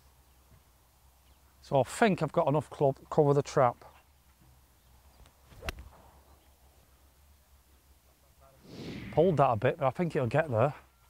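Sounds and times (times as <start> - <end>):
faint outdoor background: 0.0 - 11.0
golf club striking ball: 5.6 - 6.0.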